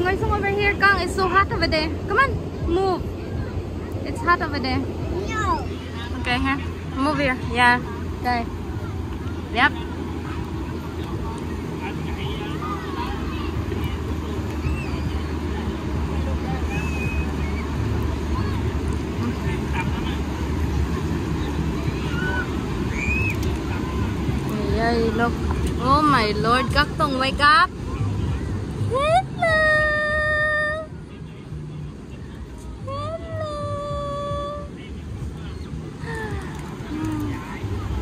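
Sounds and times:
faint distant voices: 0.0 - 38.0
surf washing: 0.0 - 38.0
wind: 0.0 - 38.0.

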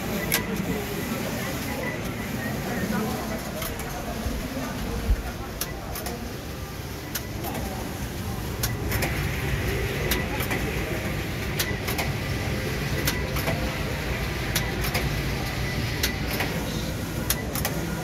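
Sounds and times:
faint murmuring voices: 0.0 - 18.0.

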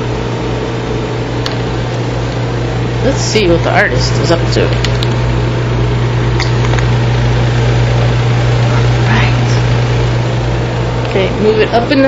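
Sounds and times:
constant low hum: 0.0 - 12.0.

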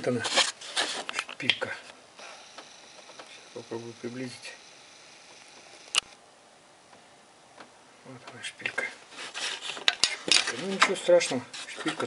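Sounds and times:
camera click: 5.9 - 6.2.

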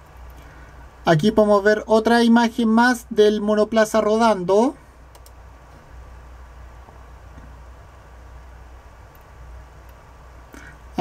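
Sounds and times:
constant low hum: 0.0 - 11.0.

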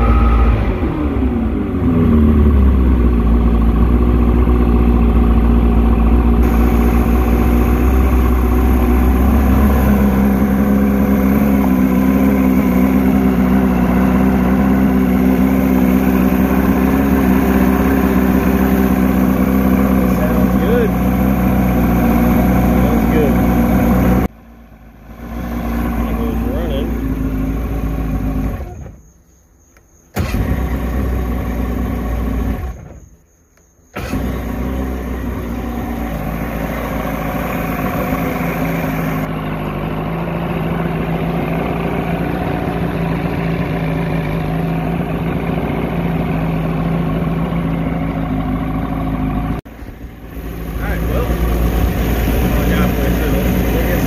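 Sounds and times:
outboard motor idling: 0.0 - 54.0.

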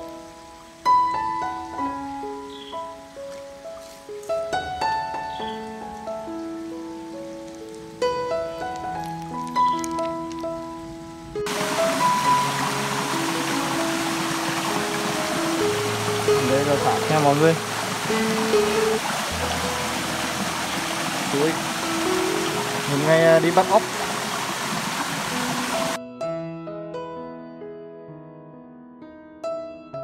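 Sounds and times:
small waterfall and stream: 0.0 - 26.0
slow background music: 0.0 - 27.8.

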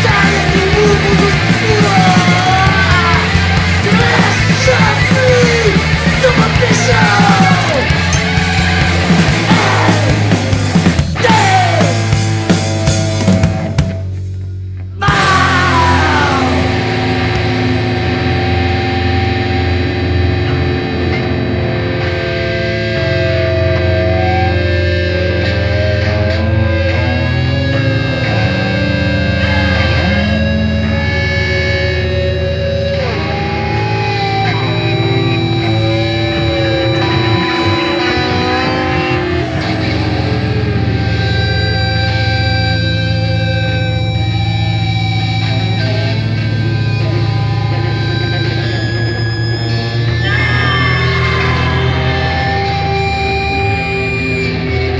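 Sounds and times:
distorted electric guitar: 0.0 - 54.9
low bass: 0.0 - 54.9.

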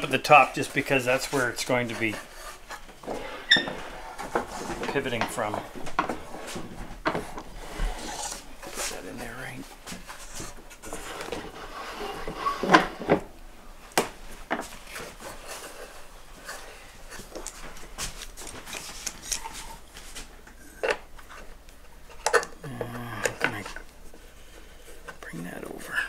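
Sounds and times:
wood and tools clattering: 0.0 - 13.4, 14.4 - 24.2.

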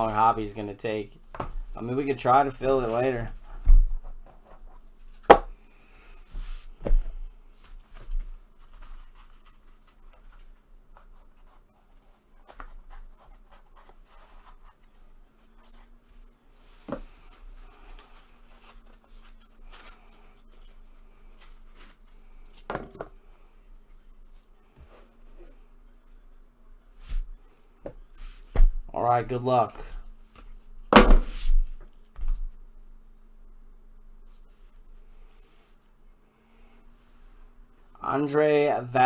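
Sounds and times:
card box thump: 30.9 - 31.4.

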